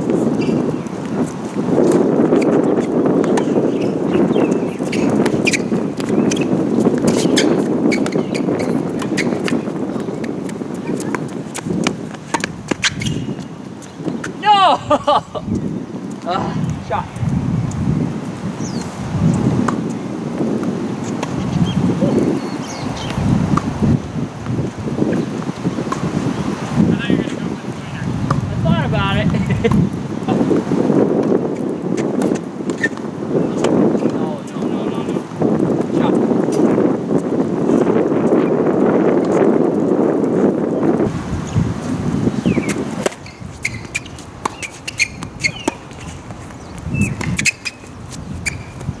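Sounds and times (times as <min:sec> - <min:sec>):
wind on microphone: 0:00.0 - 0:49.0
tennis ball bounces: 0:00.3 - 0:14.4, 0:19.6 - 0:21.6, 0:25.5 - 0:26.1, 0:32.0 - 0:34.7, 0:42.5 - 0:49.0
shoe scuffs: 0:41.4 - 0:49.0.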